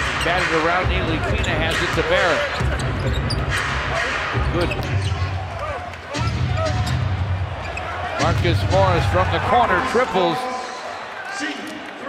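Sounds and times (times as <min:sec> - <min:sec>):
sneaker squeaks: 0:01.4 - 0:03.7, 0:04.4 - 0:05.4.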